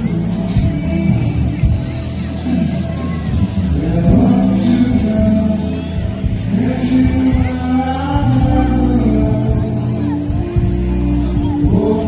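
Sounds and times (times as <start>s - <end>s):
bass-heavy amplified concert music: 0.0s - 12.0s.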